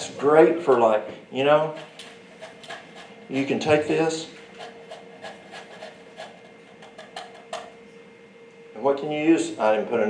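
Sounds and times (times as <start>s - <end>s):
potato scraping: 4.5s - 7.2s.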